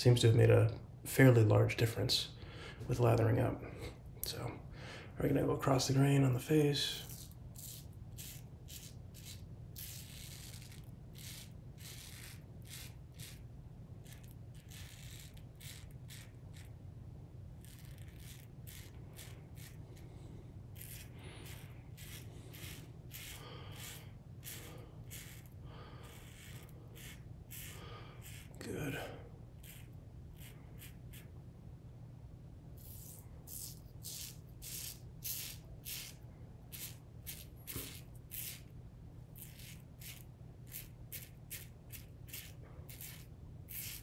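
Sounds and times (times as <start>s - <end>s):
steady low hum: 0.0s - 44.0s
razor scraping stubble: 6.5s - 16.8s, 17.6s - 31.4s, 32.8s - 38.7s, 39.3s - 44.0s.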